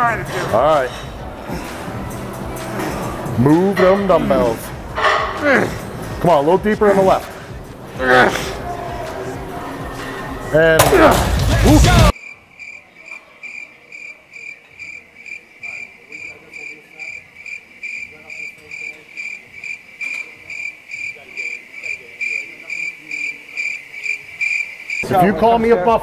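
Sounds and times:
cricket chirping: 0:12.2 - 0:25.0.

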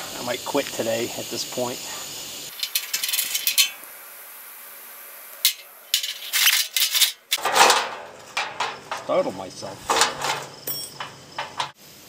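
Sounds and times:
metal clatter: 0:02.5 - 0:03.8, 0:05.4 - 0:11.8
wrench clinking on metal: 0:05.5 - 0:07.8, 0:08.4 - 0:11.8.

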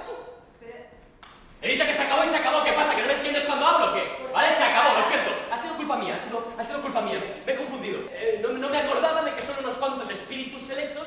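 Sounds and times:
actor speaking loudly: 0:01.6 - 0:11.0.

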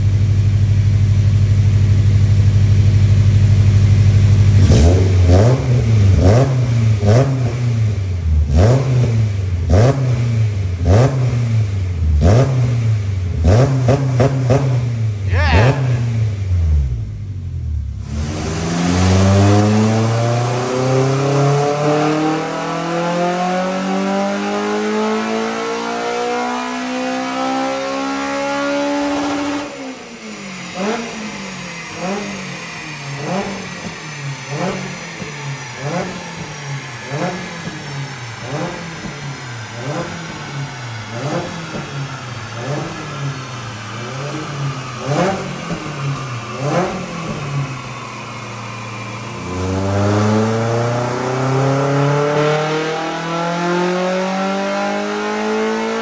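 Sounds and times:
car engine revving: 0:03.8 - 0:56.0.

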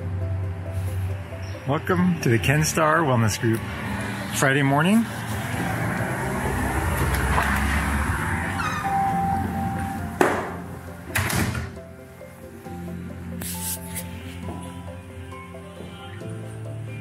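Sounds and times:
background music: 0:00.0 - 0:17.0
door handling noise: 0:10.2 - 0:11.8
sharp knocks: 0:10.2 - 0:11.8.

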